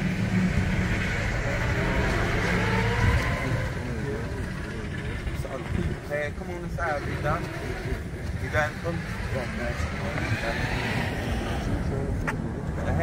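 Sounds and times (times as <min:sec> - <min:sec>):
car engine running: 0:00.0 - 0:13.0
faint voices: 0:00.6 - 0:13.0.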